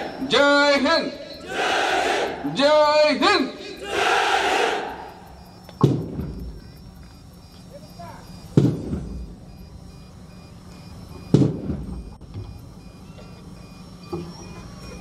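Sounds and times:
heavy thuds with ringing echo: 0:05.7 - 0:06.7, 0:08.5 - 0:09.4.

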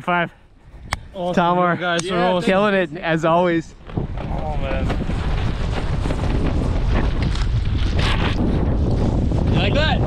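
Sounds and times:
wind buffeting microphone: 0:02.2 - 0:10.0.

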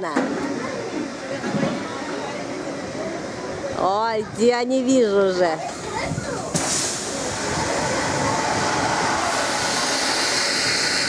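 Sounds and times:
amusement ride carriage noise: 0:00.0 - 0:11.0
faint voices: 0:00.0 - 0:11.0
woman's voice: 0:03.8 - 0:06.4.

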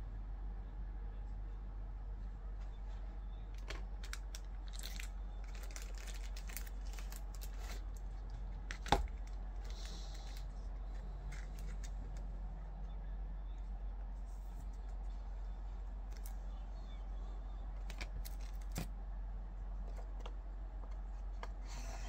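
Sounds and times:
steady low hum: 0:00.0 - 0:22.0
paper or plastic rustling: 0:03.6 - 0:12.2.

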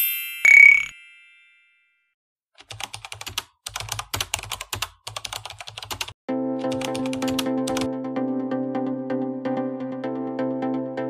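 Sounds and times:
chime: 0:00.0 - 0:02.2
keyboard typing: 0:02.6 - 0:07.9.

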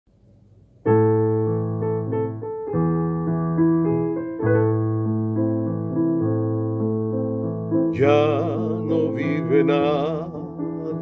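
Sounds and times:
piano playing held chords: 0:00.8 - 0:11.0.

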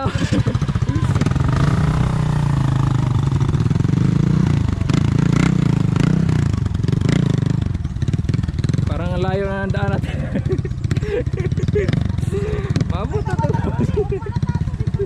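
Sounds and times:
small motorcycle engine revving: 0:00.0 - 0:15.0.

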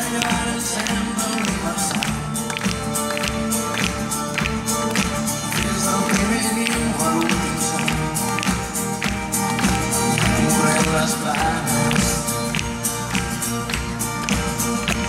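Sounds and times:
acoustic guitar: 0:00.0 - 0:15.0
drum kit steady beat: 0:00.0 - 0:15.0
keyboard: 0:00.0 - 0:15.0.

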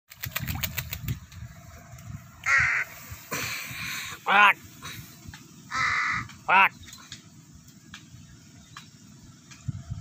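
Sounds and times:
bird splashing in water: 0:00.1 - 0:01.1
crow cawing: 0:02.4 - 0:03.0, 0:05.7 - 0:06.7.

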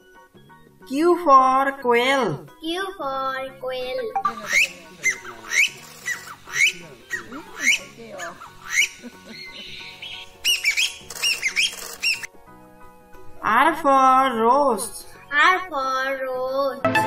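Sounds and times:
game bird calling: 0:04.2 - 0:12.3.

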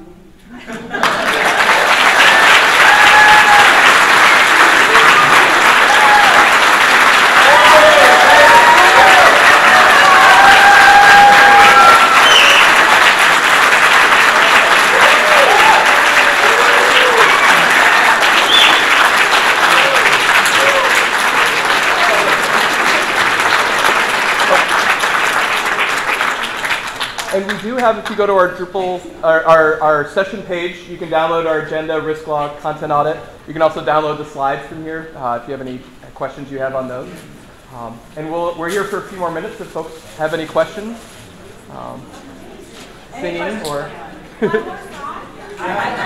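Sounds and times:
large audience applauding: 0:00.9 - 0:28.2
cheering voices: 0:01.1 - 0:25.4.

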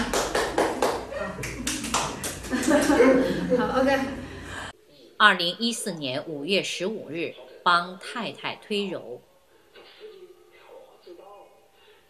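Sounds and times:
hands clapping: 0:00.0 - 0:03.1.

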